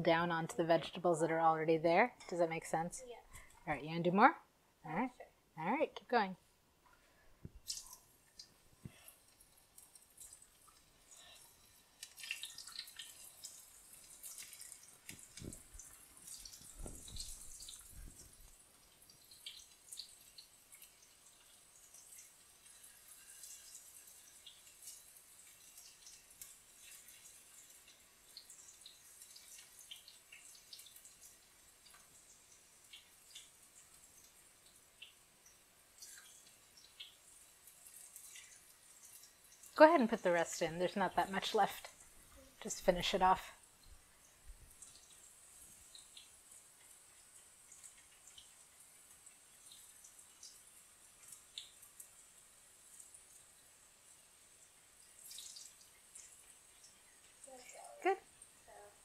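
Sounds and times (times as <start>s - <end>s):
slices frying in hot oil: 7.6s - 59.0s.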